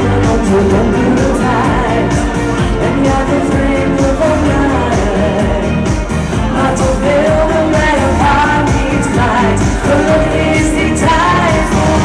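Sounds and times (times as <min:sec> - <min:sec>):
amplified backing music with drums: 0:00.0 - 0:12.0
woman singing into a microphone: 0:00.0 - 0:12.0.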